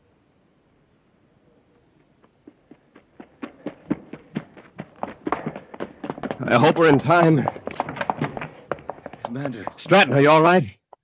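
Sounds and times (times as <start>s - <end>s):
running footsteps: 1.9s - 11.0s.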